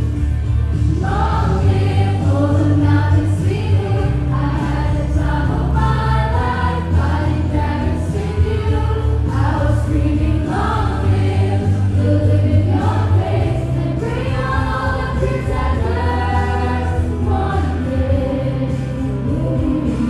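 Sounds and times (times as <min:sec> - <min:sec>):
heavy bass line: 0:00.0 - 0:20.0
group singing song: 0:00.8 - 0:20.0.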